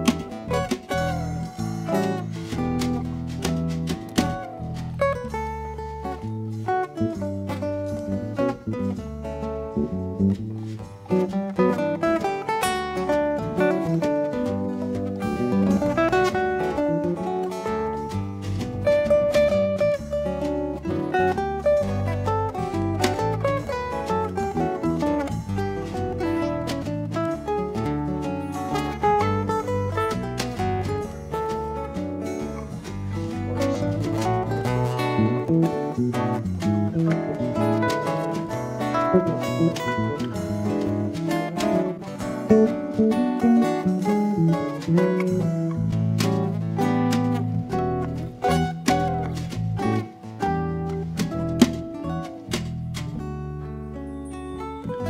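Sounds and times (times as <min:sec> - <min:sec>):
acoustic guitars: 0:00.0 - 0:55.0
electric bass: 0:00.0 - 0:55.0
melodic lead line: 0:32.4 - 0:48.9.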